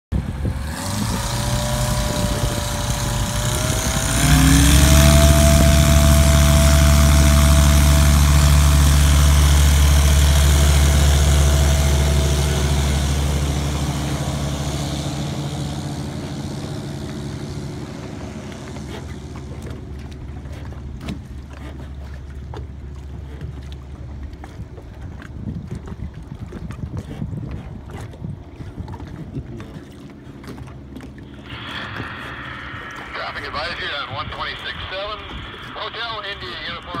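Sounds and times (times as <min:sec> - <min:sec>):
plane engine and propeller: 0:00.1 - 0:37.0.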